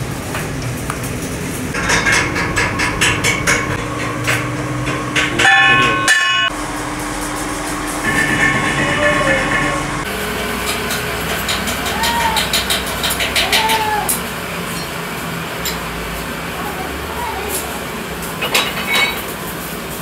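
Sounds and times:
rhythmic clicking clatter: 1.7s - 6.6s
metal lathe humming: 1.8s - 13.4s.

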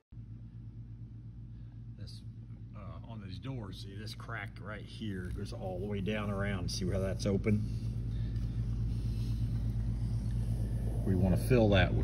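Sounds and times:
low machine hum: 0.1s - 12.0s.

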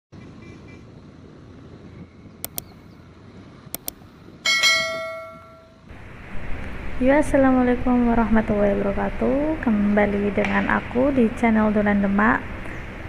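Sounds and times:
quick sharp clicks: 2.4s - 2.8s, 3.8s - 4.0s
bell strike ringing: 4.5s - 5.9s.

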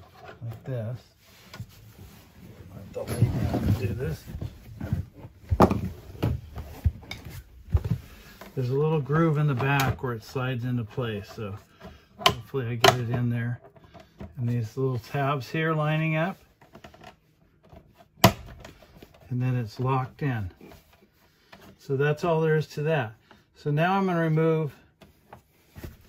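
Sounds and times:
faint taps and scrapes: 0.0s - 9.9s, 16.4s - 21.9s.

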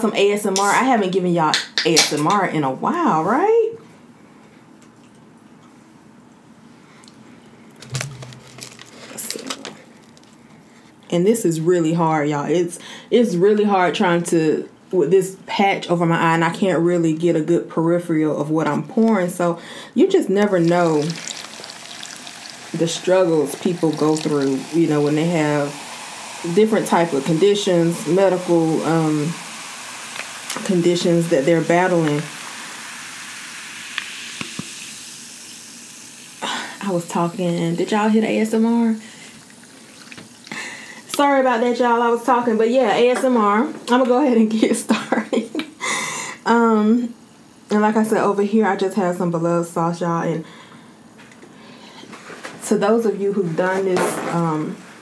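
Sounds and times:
bottle opening clicks and crackles: 7.8s - 9.5s, 33.9s - 34.8s
sparkling water fizzing: 20.4s - 42.5s.

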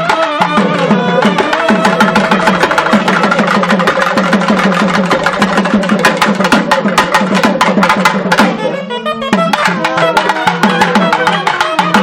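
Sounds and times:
double-reed wind instruments melody: 0.0s - 3.4s, 8.4s - 12.0s
fast barrel drum strokes: 0.0s - 12.0s.

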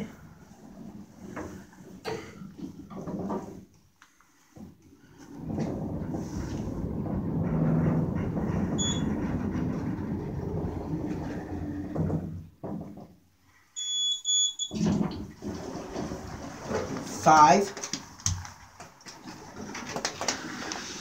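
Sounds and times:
elevator cab rumbling: 5.3s - 12.5s
high beep: 13.8s - 14.8s.

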